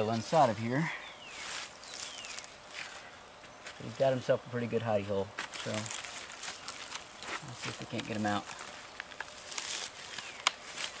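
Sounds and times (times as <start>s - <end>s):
dead wood crackling and rustling: 0.0s - 3.9s, 5.3s - 11.0s.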